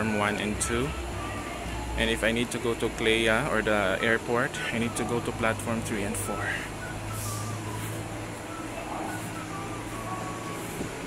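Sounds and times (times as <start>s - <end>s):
faint wavering whine: 0.0s - 11.0s
steady low hum: 0.0s - 11.0s.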